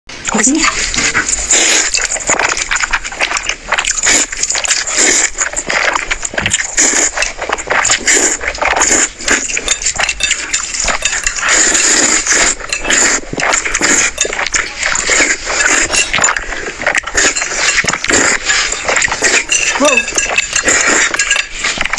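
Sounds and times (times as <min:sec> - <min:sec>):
slurping and chewing noodles: 0:00.1 - 0:21.9.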